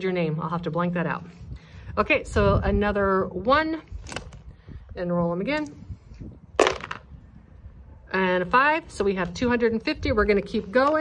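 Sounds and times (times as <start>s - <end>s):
dice clattering in a box: 6.6s - 7.1s.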